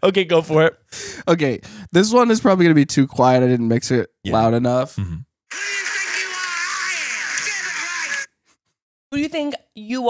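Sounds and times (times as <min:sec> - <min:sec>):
tinny phone speaker sound effect: 0:05.5 - 0:08.3.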